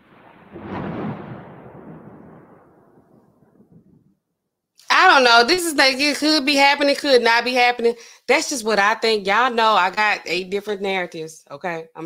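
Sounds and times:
rumbling noise: 0.0 - 4.3
woman speaking: 4.8 - 12.0.

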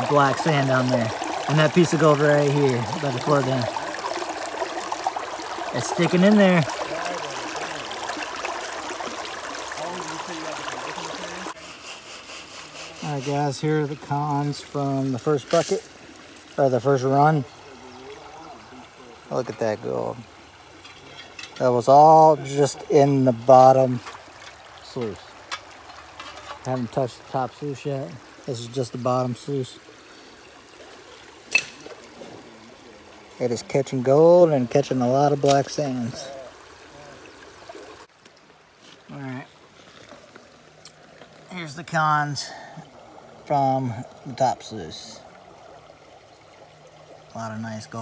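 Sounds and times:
water rushing over sluice box: 0.0 - 48.0.

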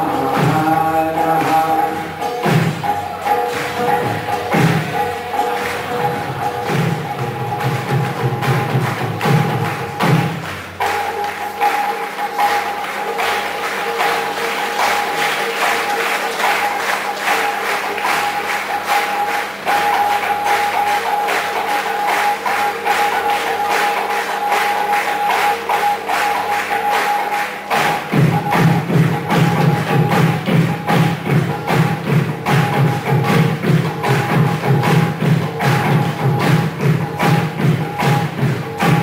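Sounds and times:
percussion beat: 0.0 - 39.0.

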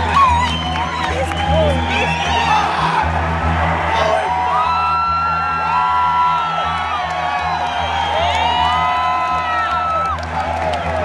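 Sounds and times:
crowd cheering and whooping: 0.0 - 11.0
pulsing bass: 0.0 - 11.0.

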